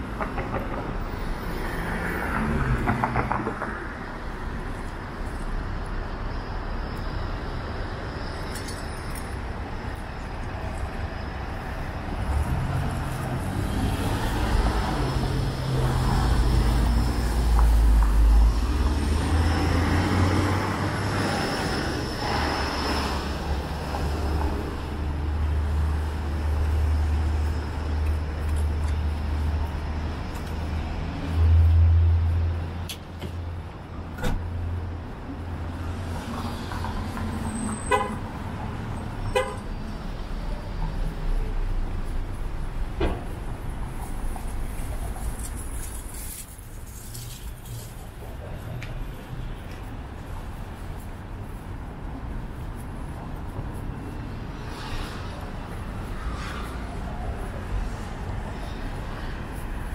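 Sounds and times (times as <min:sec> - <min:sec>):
cars driving past: 0:00.0 - 0:59.9.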